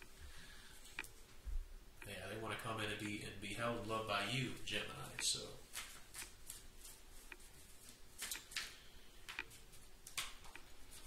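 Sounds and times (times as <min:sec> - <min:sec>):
cards shuffled by hand: 0:05.7 - 0:08.8.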